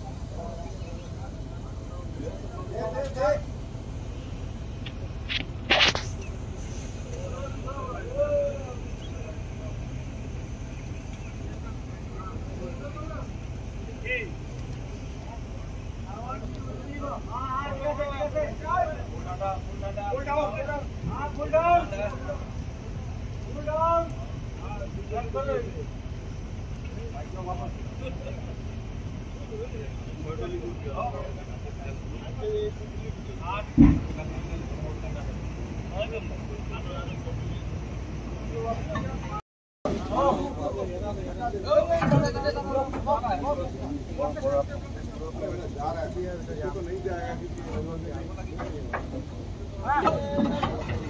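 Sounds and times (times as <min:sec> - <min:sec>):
low outdoor rumble: 0:00.0 - 0:51.0
men talking and calling out: 0:00.0 - 0:51.0
loud thump: 0:33.7 - 0:34.2.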